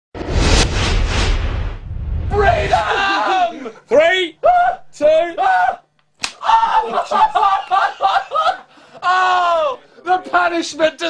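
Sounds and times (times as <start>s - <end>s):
men's voices: 2.3s - 5.8s
belt slap: 6.2s - 6.4s.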